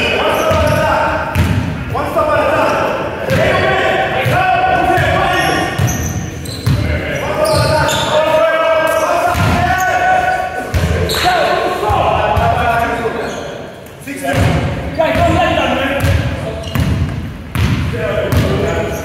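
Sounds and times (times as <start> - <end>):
players calling out: 0.0 - 19.0
basketball bouncing on wooden floor: 16.0 - 18.6.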